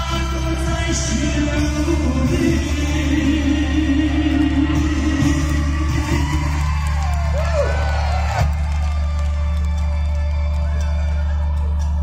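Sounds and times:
pop ballad backing music: 0.0 - 12.0.

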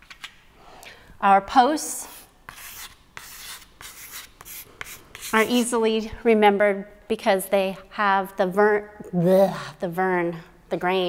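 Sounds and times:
chalk scratching on a chalkboard: 2.0 - 5.8.

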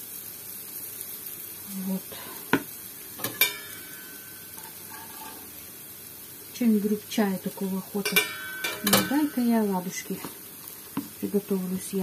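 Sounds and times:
food frying in oil: 0.0 - 12.0.

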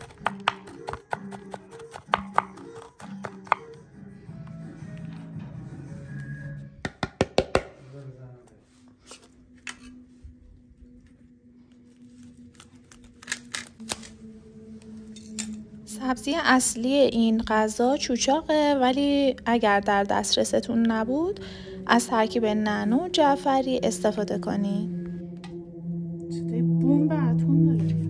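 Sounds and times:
knife chopping on wooden board: 0.0 - 3.7
background music: 0.0 - 28.0.

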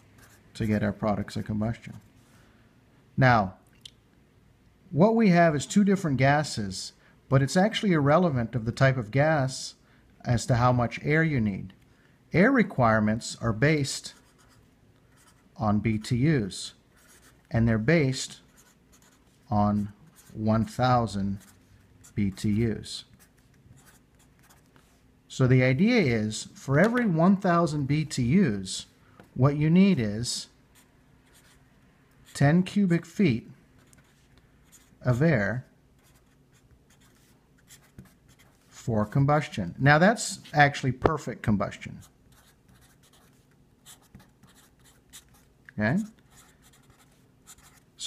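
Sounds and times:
marker pen writing on paper: 14.1 - 15.5, 16.9 - 17.5, 18.5 - 20.8, 21.4 - 24.9, 33.8 - 35.0, 36.0 - 38.7, 42.0 - 47.9.

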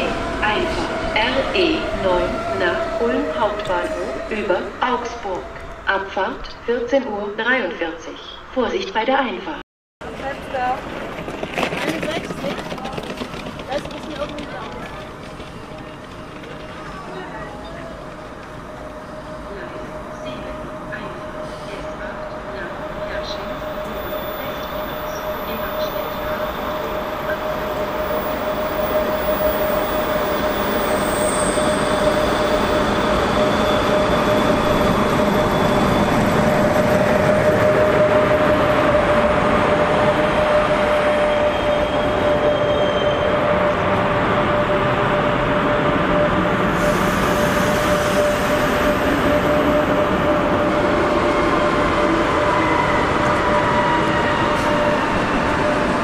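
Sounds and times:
electric locomotive passing: 0.0 - 8.9, 10.0 - 56.0.

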